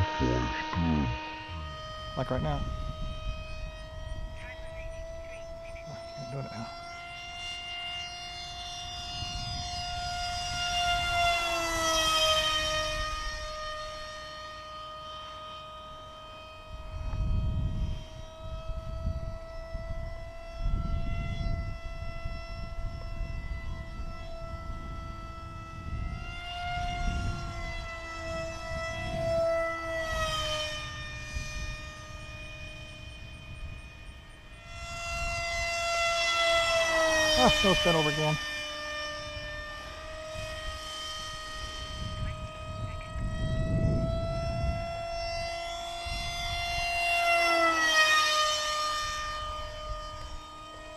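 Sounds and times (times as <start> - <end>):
wind buffeting microphone: 0.0 - 6.1, 8.6 - 11.3, 16.7 - 35.7, 39.0 - 47.0
model jet engine whine: 0.0 - 50.9.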